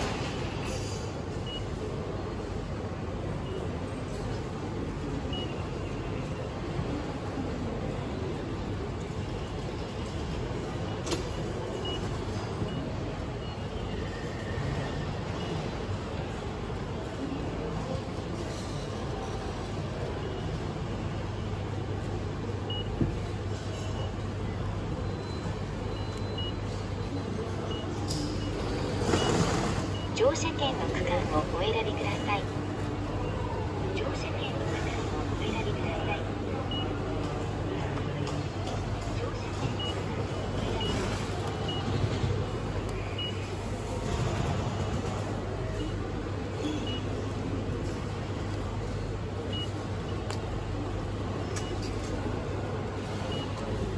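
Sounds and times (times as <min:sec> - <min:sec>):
station concourse ambience: 0:00.0 - 0:53.9
steady background hum: 0:00.0 - 0:53.9
touchscreen beeps: 0:25.0 - 0:32.6, 0:33.2 - 0:37.2, 0:39.2 - 0:40.2.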